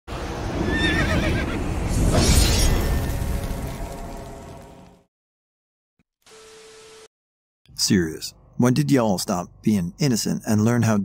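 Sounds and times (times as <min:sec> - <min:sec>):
horse whinnying: 0:00.6 - 0:01.6.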